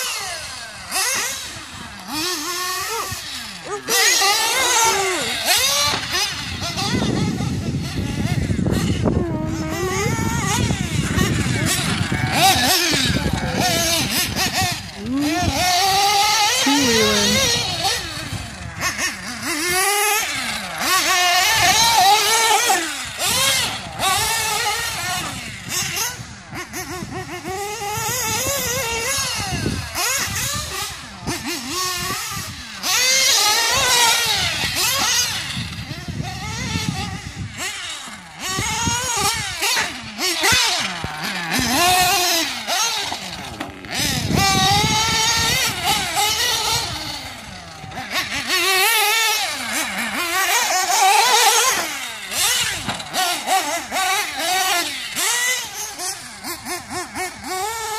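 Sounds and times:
model car nitro engine revving: 0.0s - 57.9s.

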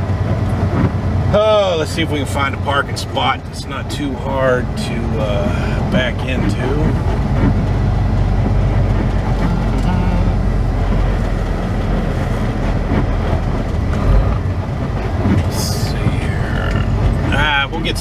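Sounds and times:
diesel truck engine rumble: 0.0s - 18.0s.

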